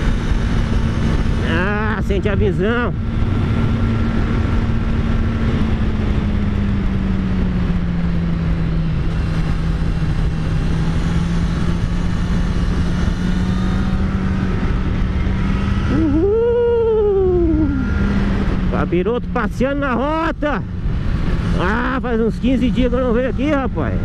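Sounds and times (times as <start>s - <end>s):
motorcycle engine cruising: 0.0s - 24.0s
wind rushing over microphone: 0.0s - 24.0s.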